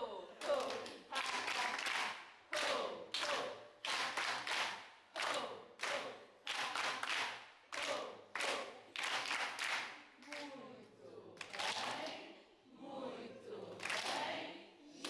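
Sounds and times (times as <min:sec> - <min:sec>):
people clapping rhythmically: 0:00.3 - 0:10.6, 0:11.4 - 0:12.4, 0:13.7 - 0:15.0
voices: 0:10.2 - 0:15.0.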